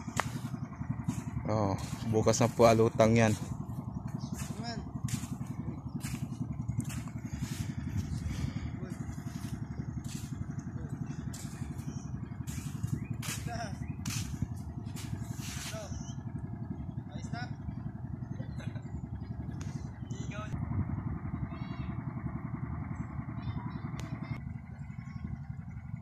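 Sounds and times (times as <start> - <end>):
small engine running: 0.0 - 26.0.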